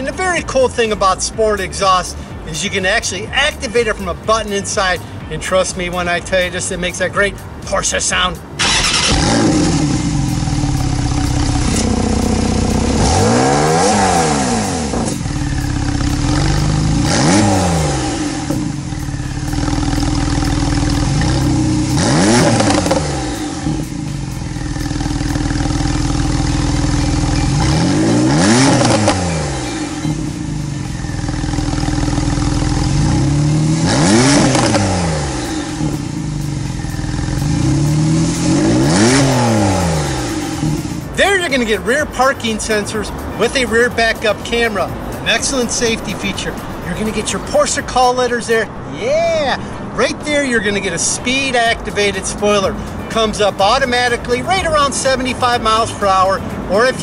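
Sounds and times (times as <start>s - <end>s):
car engine idling and revving: 0.0s - 48.9s, 49.5s - 57.0s.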